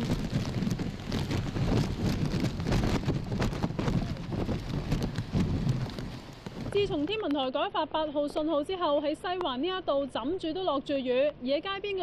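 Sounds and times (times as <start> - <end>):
heavy rain splashing on street: 0.0 - 7.0.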